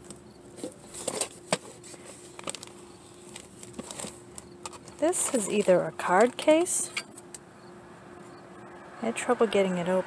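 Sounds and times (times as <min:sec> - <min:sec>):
small objects clicking and rustling: 0:00.0 - 0:07.3
faint steady hum: 0:00.0 - 0:10.0.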